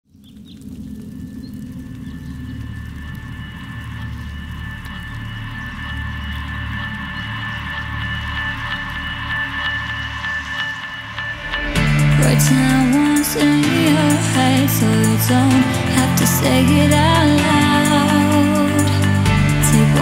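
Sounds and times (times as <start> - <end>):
ambient synth drone: 0.3 - 20.0
low pulsing bass pad: 0.6 - 20.0.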